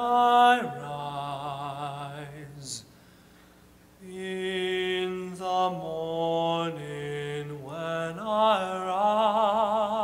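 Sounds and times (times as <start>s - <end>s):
tenor voice singing spiritual: 0.0s - 2.9s, 4.0s - 10.0s.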